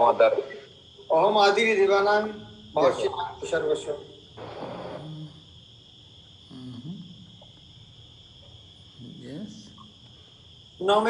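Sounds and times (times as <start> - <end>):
high-pitched insect chirring: 0.0 - 11.0
faint voice murmuring: 6.5 - 7.1.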